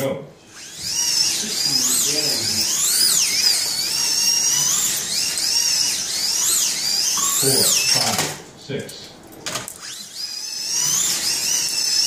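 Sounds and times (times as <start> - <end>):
slot car motors whining: 0.5 - 8.3, 9.6 - 12.0.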